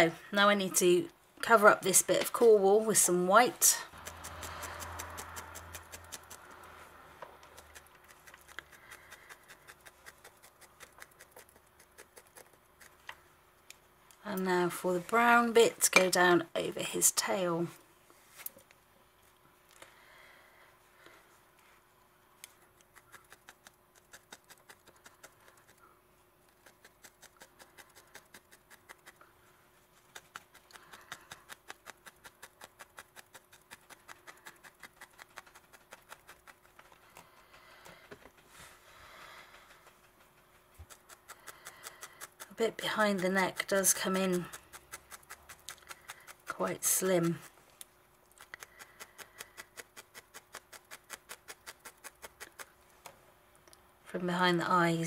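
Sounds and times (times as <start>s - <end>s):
felting needle jabbing into wool: 3.6s - 13.8s, 22.4s - 25.8s, 26.4s - 29.2s, 30.0s - 38.0s, 40.6s - 52.8s.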